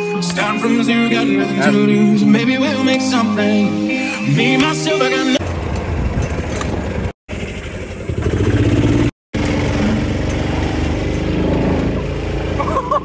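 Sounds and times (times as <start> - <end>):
golf cart engine running: 5.4 - 13.0.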